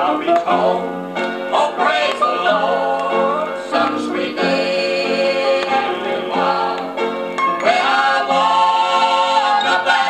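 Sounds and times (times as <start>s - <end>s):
vocal group singing in harmony: 0.0s - 10.0s.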